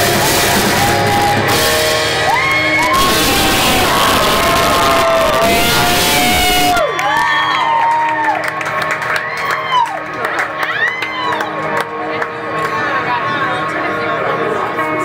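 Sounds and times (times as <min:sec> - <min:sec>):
live rock band playing: 0:00.0 - 0:07.4
crowd whooping and cheering: 0:00.0 - 0:12.0.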